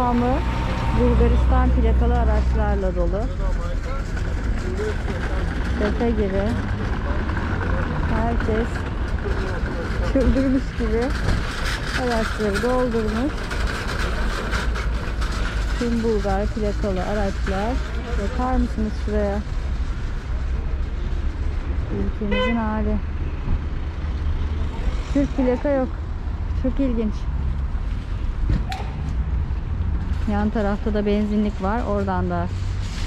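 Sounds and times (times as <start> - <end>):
low rumbling car park noise: 0.0 - 33.0.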